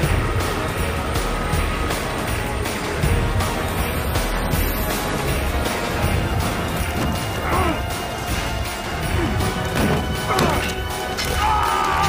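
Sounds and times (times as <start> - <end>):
action score music: 0.0 - 12.0.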